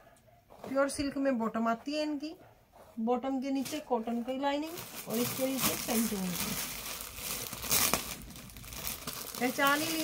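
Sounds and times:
woman's voice: 0.6s - 6.7s, 9.4s - 10.0s
plastic bag crinkling: 4.5s - 10.0s.

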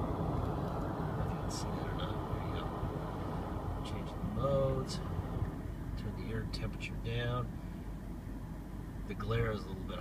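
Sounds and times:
car air conditioning blower: 0.0s - 10.0s
car engine idling: 0.0s - 10.0s.

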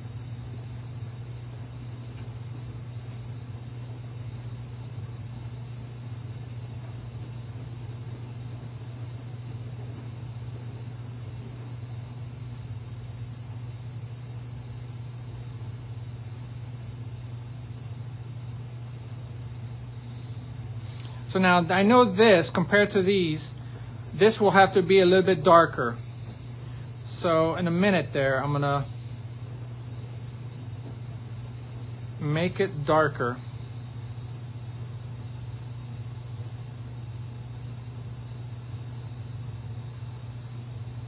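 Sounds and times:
faint hiss: 0.0s - 41.0s
low background hum: 0.0s - 41.0s.

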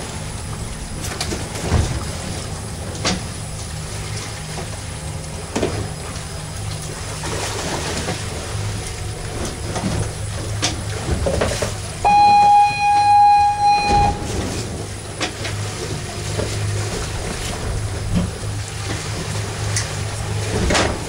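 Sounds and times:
boat engine running: 0.0s - 21.0s
water noise: 0.0s - 21.0s
wind: 0.0s - 21.0s.

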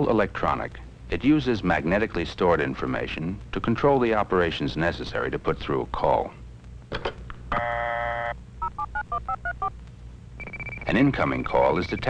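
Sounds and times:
buzzy dial tone: 7.5s - 9.8s, 10.4s - 12.0s
touch-tone dialing beeps: 8.7s - 9.7s, 10.4s - 12.0s.

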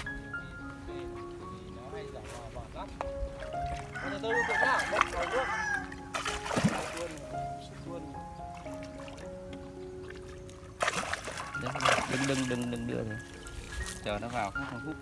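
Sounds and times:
background music: 0.0s - 15.0s
fish splashing at surface: 4.8s - 7.3s, 10.8s - 14.0s.

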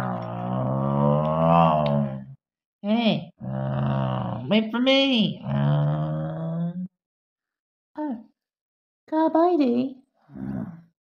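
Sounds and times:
person imitating engine noise: 0.0s - 2.3s.

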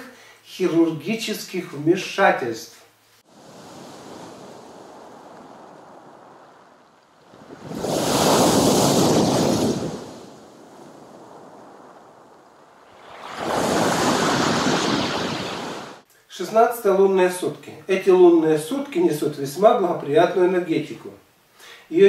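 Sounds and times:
waves crashing against pier: 3.3s - 16.0s
waves washing on pebbles: 3.3s - 16.0s.

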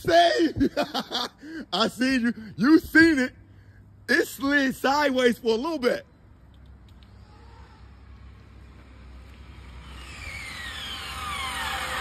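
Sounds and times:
electric toy car motor whine: 9.5s - 12.0s.

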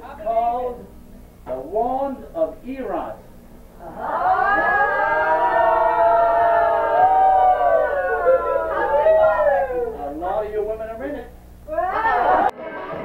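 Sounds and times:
voices wailing together: 3.8s - 10.5s, 11.7s - 13.0s.

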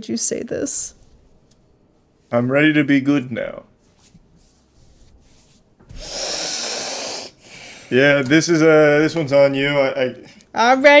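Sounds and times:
person breathing out noisily: 5.9s - 7.9s.

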